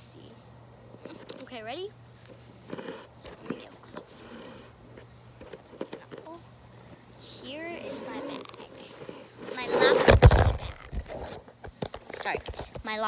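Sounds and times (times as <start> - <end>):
child's wordless voice: 7.2 - 10.7.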